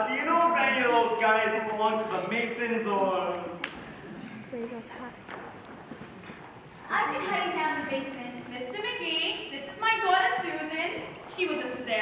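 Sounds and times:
footsteps on stage floor: 0.4 - 12.0.

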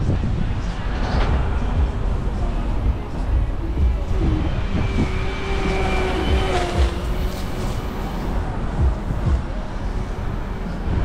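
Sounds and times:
road traffic: 0.0 - 11.0
vehicle whine: 0.0 - 11.0
wind rumble on microphone: 0.0 - 11.0.

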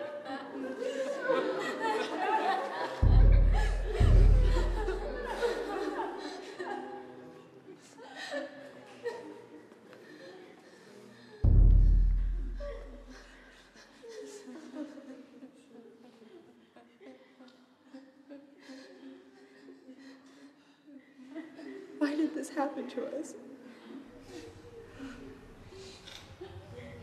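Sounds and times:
light laughter: 0.0 - 7.0, 12.2 - 20.3
deep boom: 3.0 - 5.4, 11.4 - 13.2
film music: 3.0 - 5.6
indistinct voices: 3.0 - 6.7.

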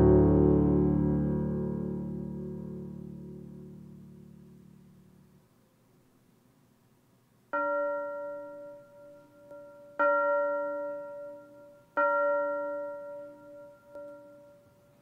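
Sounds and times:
bell-like note ringing: 7.6 - 15.0.

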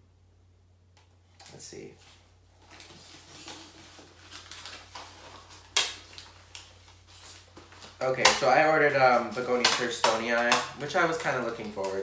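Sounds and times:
packing material rustling and crinkling: 1.4 - 12.0.

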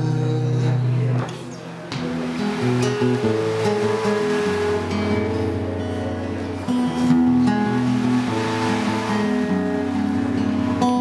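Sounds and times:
acoustic guitar chords: 0.0 - 11.0
ocean wave sound: 1.9 - 11.0.

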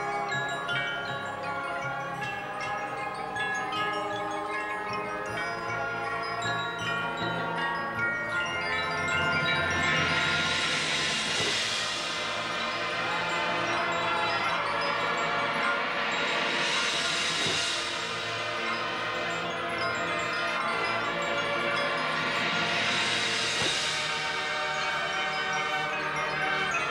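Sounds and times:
mallet percussion and chimes: 0.0 - 26.9.

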